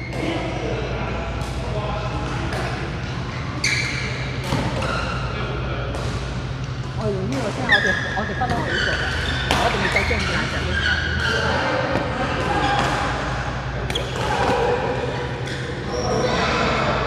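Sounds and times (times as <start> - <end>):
voices: 0.0 - 17.0.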